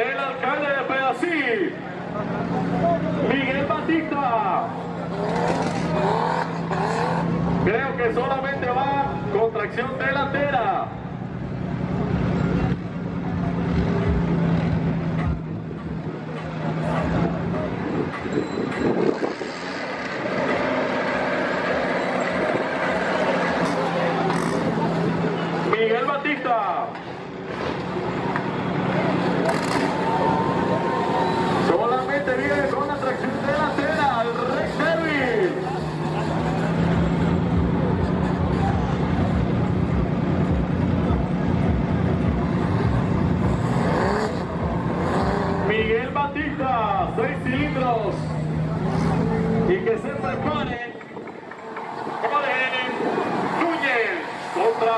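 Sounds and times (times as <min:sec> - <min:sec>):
off-road vehicle engine revving hard: 0:04.7 - 0:07.7, 0:13.7 - 0:25.7, 0:28.7 - 0:46.2, 0:47.0 - 0:50.4
people talking: 0:45.7 - 0:51.3.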